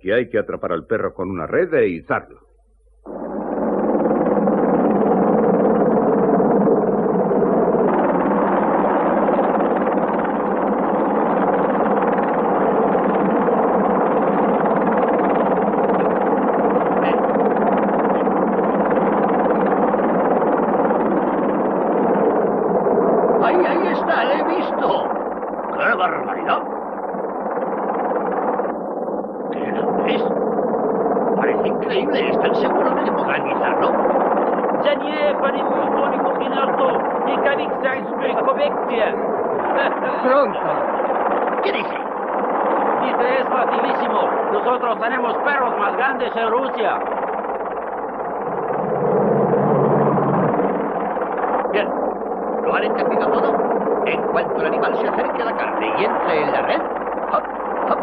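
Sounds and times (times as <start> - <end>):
men talking: 0.0 - 2.4, 17.0 - 18.5, 23.4 - 26.7, 29.5 - 30.4, 31.4 - 42.1, 42.9 - 47.1, 52.6 - 58.0
steady layered drone: 3.0 - 58.0.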